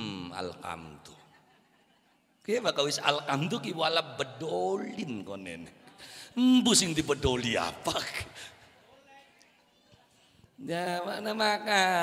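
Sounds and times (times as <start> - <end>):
man's amplified voice: 0.0 - 1.3, 2.4 - 9.4.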